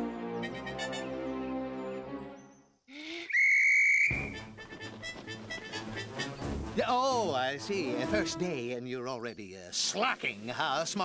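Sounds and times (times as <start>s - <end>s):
shrill whistle blast: 3.3s - 4.4s
pigeon wings flapping: 4.6s - 6.2s.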